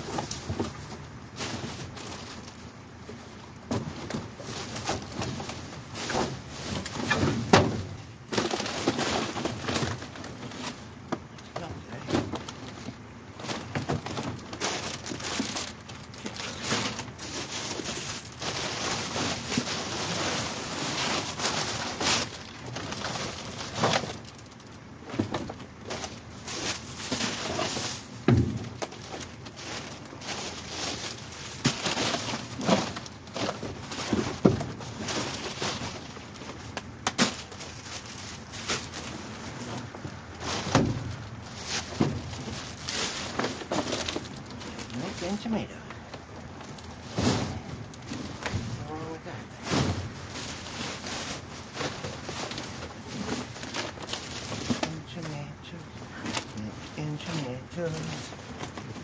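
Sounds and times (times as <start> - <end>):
plastic bags crinkling: 0.0 - 7.1, 8.1 - 59.0
cardboard boxes scraping and bumping: 47.0 - 48.9, 49.5 - 55.0.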